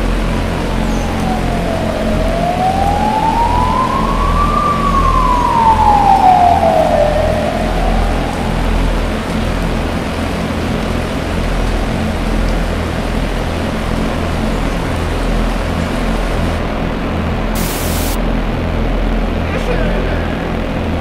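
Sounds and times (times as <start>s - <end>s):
siren-like electronic tone: 0.6s - 9.4s, 17.6s - 18.2s
hissing noise: 17.6s - 18.2s.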